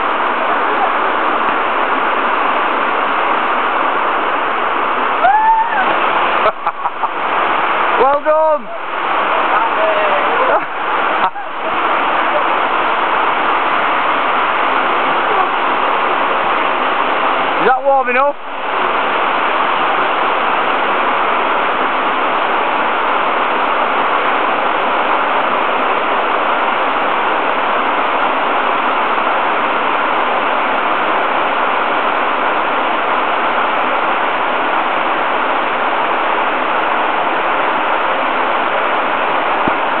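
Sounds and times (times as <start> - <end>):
stream rushing over rocks: 0.0 - 40.0.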